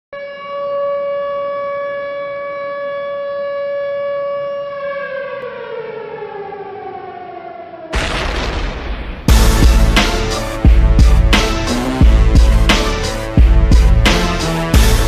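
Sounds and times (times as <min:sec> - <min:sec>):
siren-like wail: 0:00.2 - 0:15.0.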